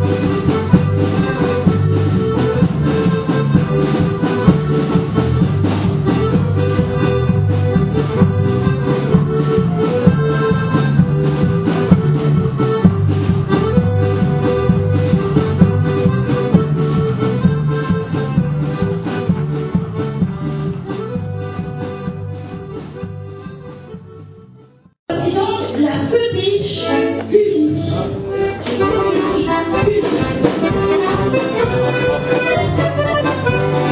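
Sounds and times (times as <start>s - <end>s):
accordion folk dance tune: 0.0s - 33.9s.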